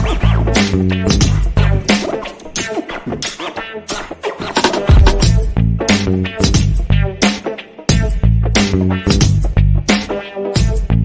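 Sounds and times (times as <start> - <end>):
instrumental music with bass: 0.0 - 2.1, 4.6 - 11.0.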